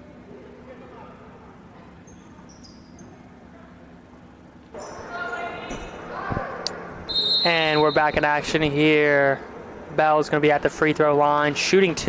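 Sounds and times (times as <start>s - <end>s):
faint voices in large hall: 0.0s - 12.0s
high whistle-like tone: 7.1s - 8.2s.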